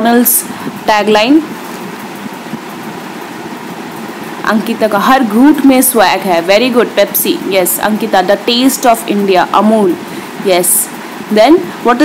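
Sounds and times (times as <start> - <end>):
steady background hiss: 0.0 - 12.0.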